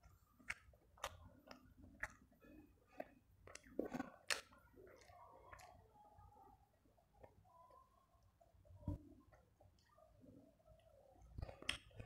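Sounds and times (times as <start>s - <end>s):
chewing and wet mouth sounds: 0.0s - 12.0s.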